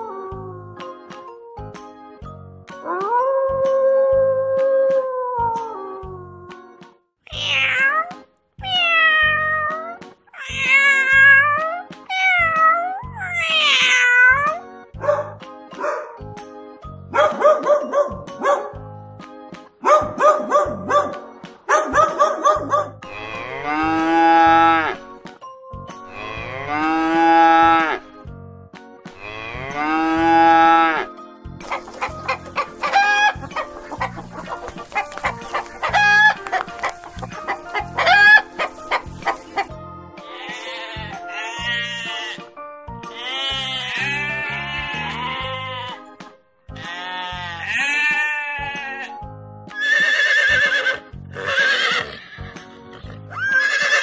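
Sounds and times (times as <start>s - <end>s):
dog barking: 15.0s - 16.2s, 17.1s - 18.8s, 19.8s - 23.0s
chicken clucking: 31.6s - 39.7s.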